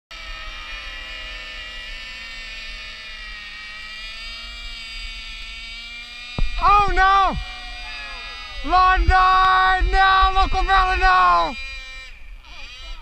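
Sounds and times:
model plane motors buzzing: 0:00.1 - 0:13.0
wind rumble on microphone: 0:08.5 - 0:11.1.

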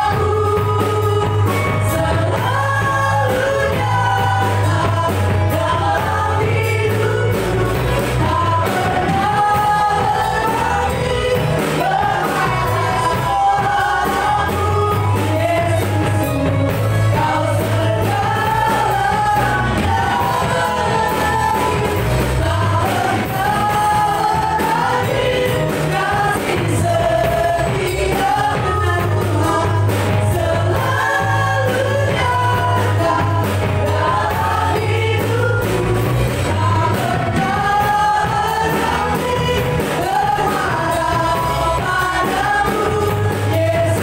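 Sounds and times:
drums: 0:00.0 - 0:44.0
electric guitars: 0:00.0 - 0:44.0
keyboard: 0:00.0 - 0:44.0
steady bass line: 0:00.0 - 0:44.0
worship band singing gospel song: 0:00.0 - 0:44.0.

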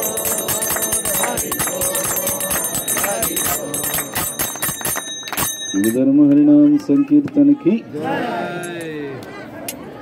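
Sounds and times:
metal bell struck rapidly: 0:00.0 - 0:06.2.

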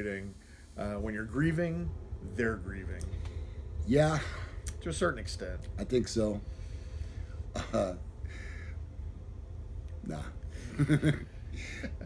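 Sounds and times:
low room hum: 0:00.0 - 0:12.0
raspy breathy stifled laugh: 0:10.5 - 0:12.0.

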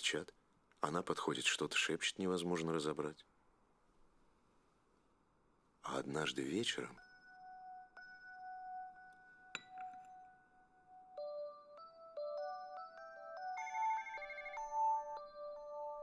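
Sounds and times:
electronic phone ringtone: 0:11.0 - 0:16.0.

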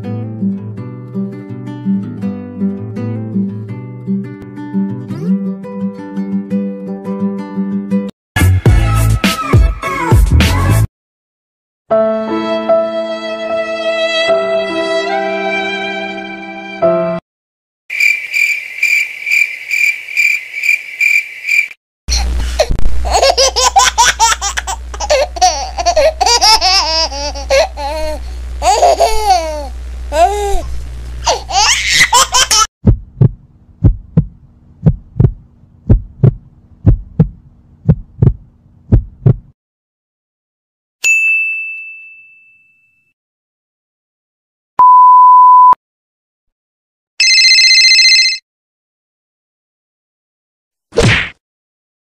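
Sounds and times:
baby laughing: 0:22.1 - 0:32.7
low hum: 0:27.1 - 0:31.3
bright high ding: 0:41.0 - 0:43.1.

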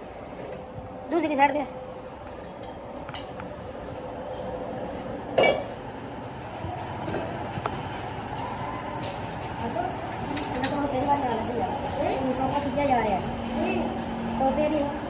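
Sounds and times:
workshop hum: 0:00.0 - 0:15.0.

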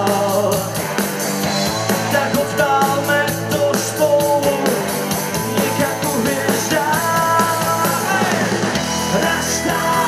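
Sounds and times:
rock band playing live: 0:00.0 - 0:10.0.

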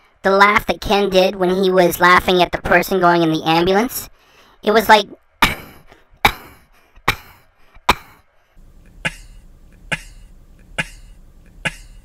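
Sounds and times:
low hum: 0:08.6 - 0:12.0.

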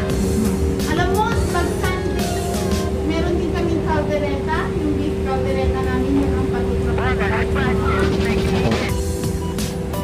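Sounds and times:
steady tonal hum: 0:00.0 - 0:10.0.

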